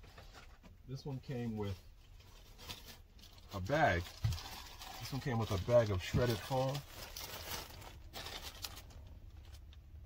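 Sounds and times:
plastic bag crinkling: 2.1s - 9.7s.

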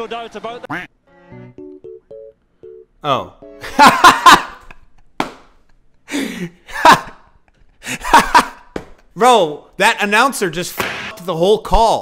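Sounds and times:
man laughing hard: 3.6s - 5.0s, 6.1s - 8.7s.

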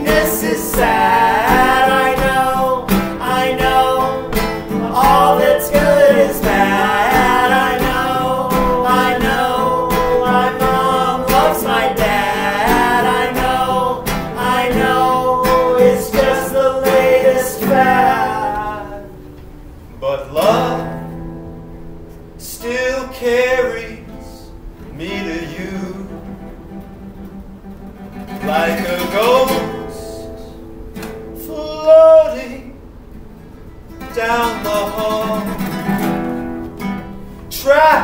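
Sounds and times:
person singing sliding notes: 0.0s - 19.3s
acoustic guitar strumming: 0.0s - 38.0s.

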